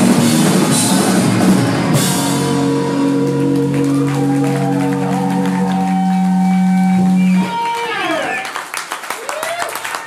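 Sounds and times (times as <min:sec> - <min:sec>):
electric guitars and bass chord: 0:00.0 - 0:08.3
wavering bending guitar tone: 0:02.4 - 0:08.2.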